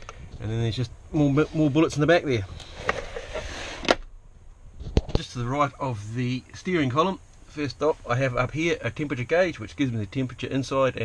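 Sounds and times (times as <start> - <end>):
rustling of storage box lid: 1.9 - 4.1.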